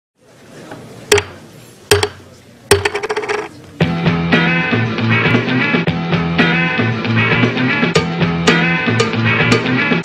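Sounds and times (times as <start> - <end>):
rock song: 3.9 - 10.0.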